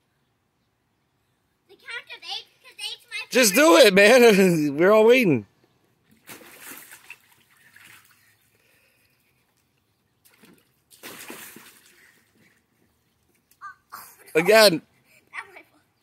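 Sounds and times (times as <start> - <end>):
water splashing in a pool: 6.1 - 8.8, 10.2 - 12.7.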